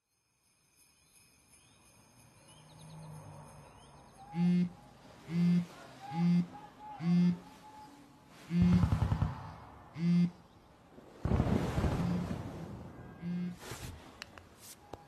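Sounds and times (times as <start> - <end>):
phone vibrating on wooden table: 8.5 - 8.8.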